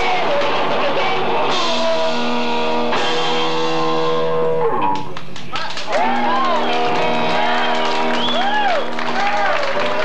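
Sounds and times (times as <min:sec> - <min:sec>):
punk rock band playing live: 0:00.0 - 0:09.4.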